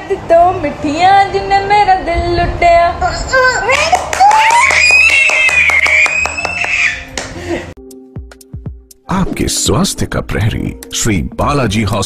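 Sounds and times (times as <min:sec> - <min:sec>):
dance song with clapping beat: 0:03.8 - 0:07.4
toddler squealing: 0:04.4 - 0:07.1.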